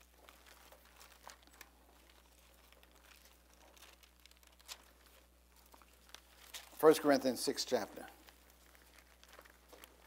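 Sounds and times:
pages being leafed through: 0.0s - 7.0s, 8.2s - 10.0s
man speaking: 6.8s - 8.2s.

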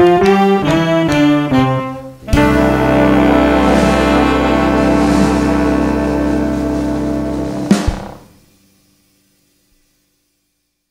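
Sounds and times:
jazz ensemble final chord: 0.0s - 8.4s.

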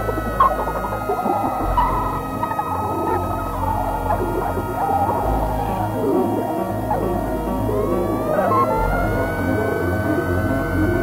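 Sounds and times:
low drone: 0.0s - 11.0s
sustained tones sliding downward: 0.0s - 11.0s.

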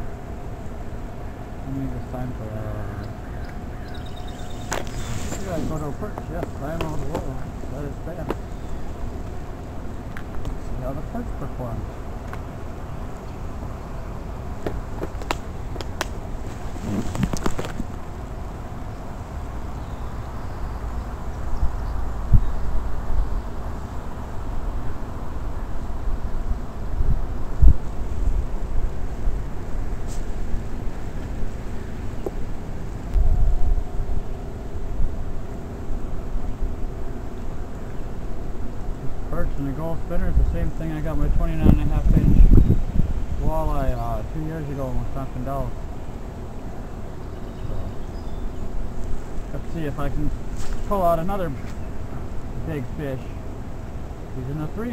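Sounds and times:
wind buffeting microphone: 1.5s - 18.5s, 21.1s - 31.6s, 32.2s - 45.6s.

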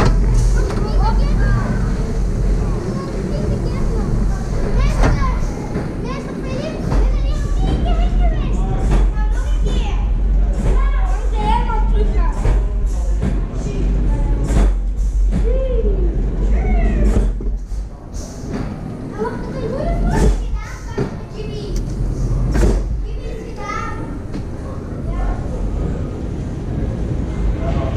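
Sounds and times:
children chattering and calling out: 0.0s - 27.9s
steady low rumble: 0.0s - 27.9s.

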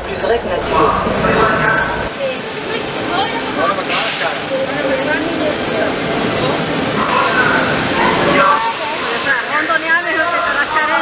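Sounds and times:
people's voices: 0.0s - 11.0s
water pouring and spraying: 2.1s - 11.0s.

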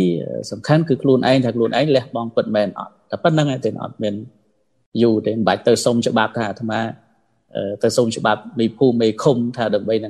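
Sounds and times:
man talking: 0.0s - 4.3s, 5.0s - 10.0s.

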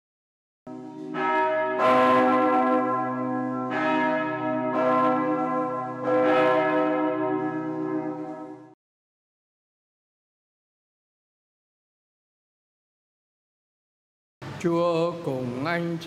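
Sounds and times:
church bells ringing: 0.7s - 8.8s.

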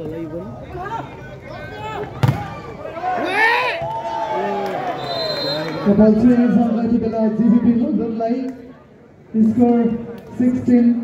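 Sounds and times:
players and spectators shouting: 0.6s - 7.9s.

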